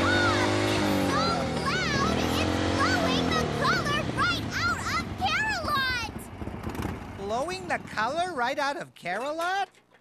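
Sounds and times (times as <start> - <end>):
cartoon character voice: 0.0 - 6.2.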